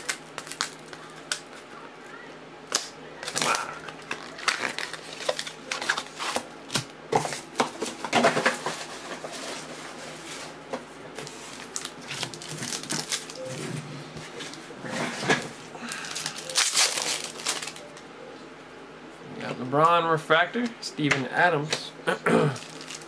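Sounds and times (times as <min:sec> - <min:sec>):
foil wrapper crinkling: 0:00.0 - 0:01.7, 0:03.2 - 0:06.4, 0:11.2 - 0:13.4, 0:15.9 - 0:17.8, 0:22.5 - 0:23.0.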